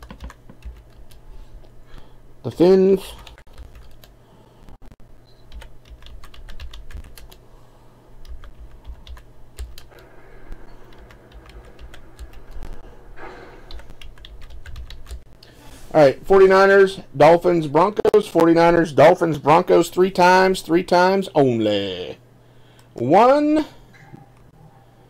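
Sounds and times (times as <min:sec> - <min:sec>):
computer keyboard typing: 0:00.0 - 0:01.2, 0:03.2 - 0:04.2, 0:05.5 - 0:07.4, 0:08.2 - 0:10.0, 0:10.7 - 0:12.8, 0:13.6 - 0:15.3.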